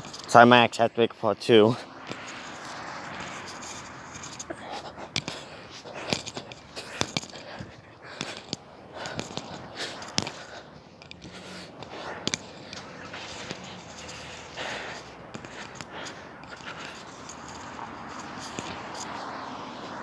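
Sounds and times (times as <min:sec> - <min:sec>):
steady outdoor hiss: 0:00.0 - 0:20.0.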